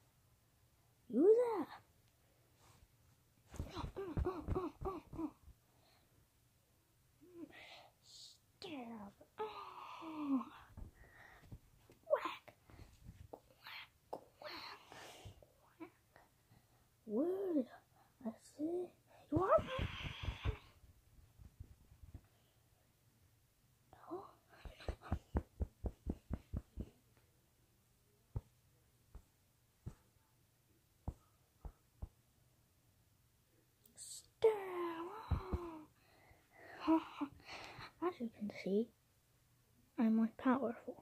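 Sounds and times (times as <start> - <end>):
breathy whisper: 17.6 - 20.8.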